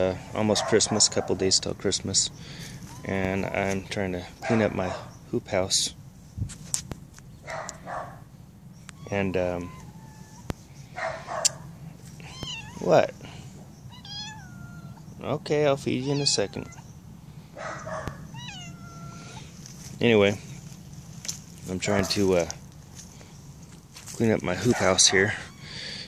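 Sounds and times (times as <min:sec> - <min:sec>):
cat meowing: 0:08.9 - 0:10.5, 0:12.2 - 0:13.0, 0:13.9 - 0:15.1, 0:15.9 - 0:16.8, 0:18.1 - 0:19.4, 0:24.8 - 0:25.8.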